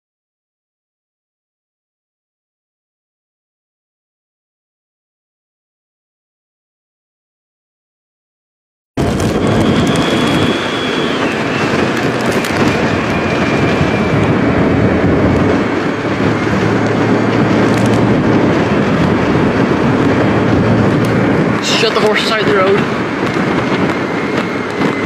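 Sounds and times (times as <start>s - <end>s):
vehicle road and wind noise: 9.0s - 25.0s
faint high whine: 9.2s - 12.0s.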